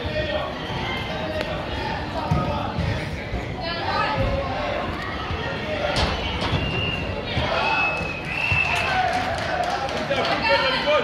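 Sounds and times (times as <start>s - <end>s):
players' voices: 0.0s - 11.0s
soccer ball thudding: 2.2s - 3.0s.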